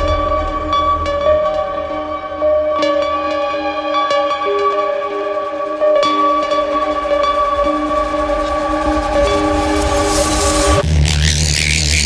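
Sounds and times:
deep bass drone: 0.0s - 3.3s, 6.4s - 12.0s.

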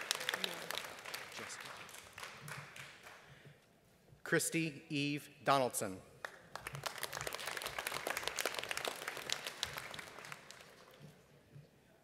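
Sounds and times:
audience applauding: 0.0s - 3.4s, 6.2s - 11.3s.

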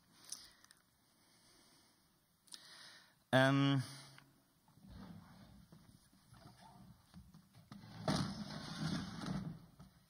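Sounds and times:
chair scraping on wooden floor: 7.7s - 9.9s.

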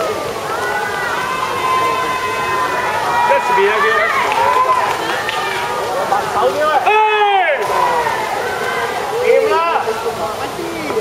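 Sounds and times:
background noise: 0.0s - 11.0s
high-pitched voices shouting and cheering: 0.4s - 5.9s.

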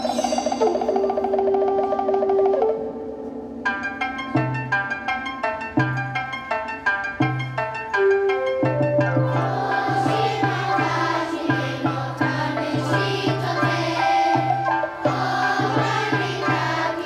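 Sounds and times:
instrumental song introduction: 0.0s - 17.0s.

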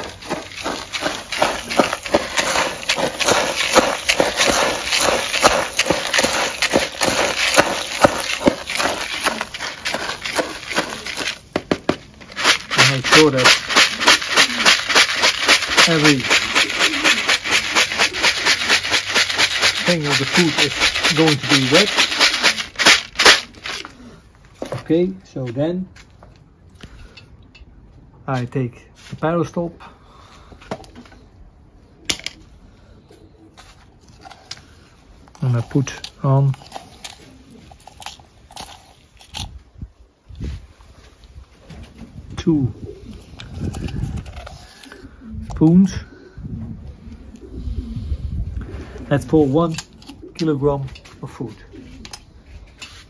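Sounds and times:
spoon stirring rattling grain: 0.0s - 23.9s, 35.4s - 39.5s.

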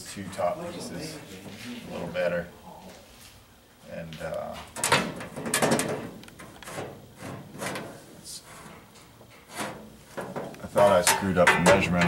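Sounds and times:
metal panel scraping on car body: 9.4s - 10.3s.

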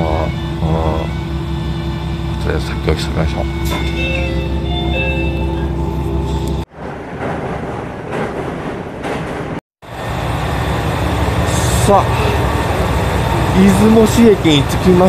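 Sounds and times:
faint whining tones: 0.0s - 6.6s
train interior rumble: 0.0s - 15.0s.

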